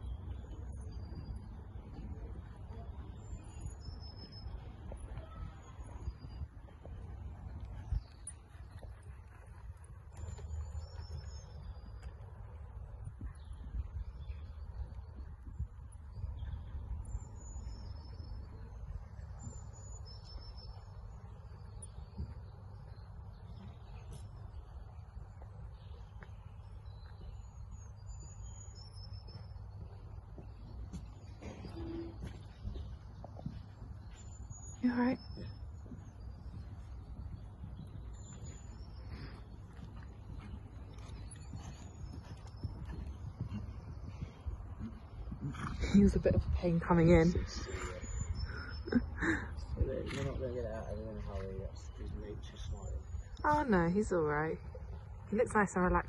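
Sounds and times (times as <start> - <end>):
birds singing: 0.0 - 56.0.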